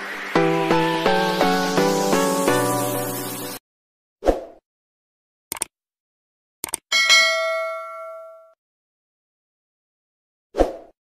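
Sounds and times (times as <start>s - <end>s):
cursor click: 5.5s - 5.7s, 6.6s - 6.9s
bright notification bell ding: 6.9s - 8.6s.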